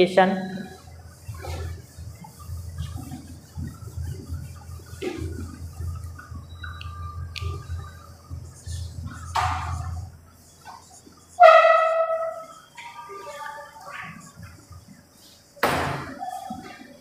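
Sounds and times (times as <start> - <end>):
marker squeaking on whiteboard: 0.5 - 14.9
duster rubbing whiteboard: 0.7 - 6.4, 7.4 - 15.4.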